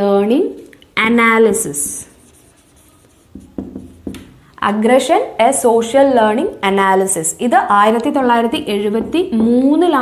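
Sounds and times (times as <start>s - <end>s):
marker writing on whiteboard: 1.4s - 4.4s.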